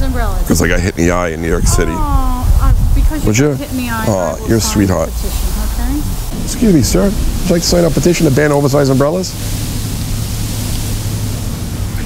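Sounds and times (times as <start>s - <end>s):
even hiss: 0.0s - 12.0s
low constant hum: 0.0s - 12.0s.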